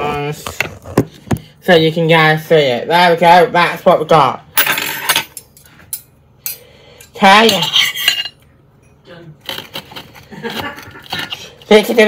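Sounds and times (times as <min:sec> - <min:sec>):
cutlery scraping on a plate: 0:04.9 - 0:08.4.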